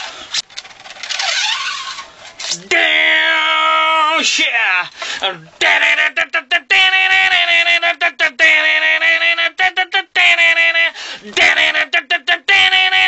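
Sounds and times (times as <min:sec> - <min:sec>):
man imitating guitar riff: 0:02.6 - 0:13.0.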